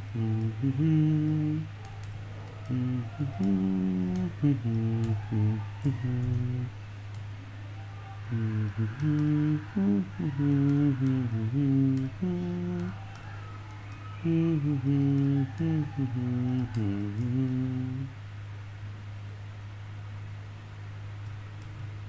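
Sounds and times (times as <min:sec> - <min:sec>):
man humming a tune: 0:00.0 - 0:06.8, 0:08.0 - 0:18.2
low electrical hum: 0:00.0 - 0:22.0.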